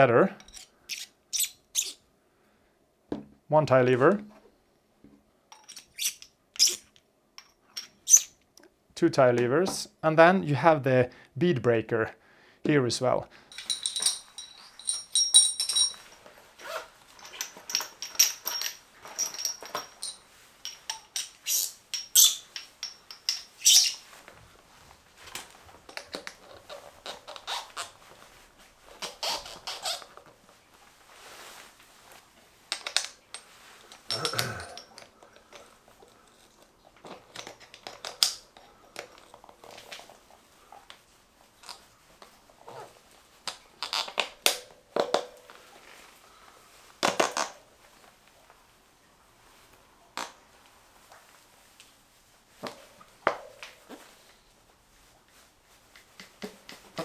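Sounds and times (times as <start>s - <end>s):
rubber squeaks: 0.9s - 2.0s, 23.6s - 24.1s, 26.6s - 28.0s, 28.9s - 30.2s.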